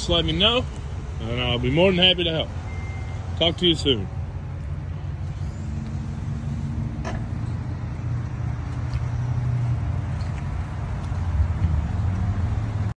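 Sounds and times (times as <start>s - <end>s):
vehicle engine idling: 0.0s - 12.9s.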